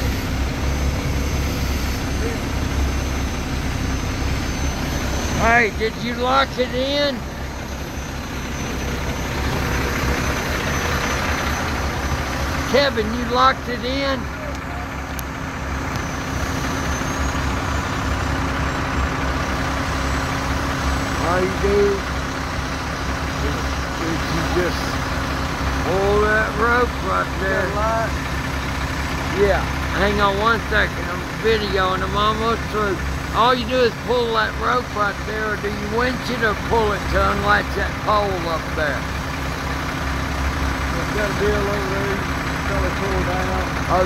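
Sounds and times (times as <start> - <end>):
diesel engine idling: 0.0 - 44.0.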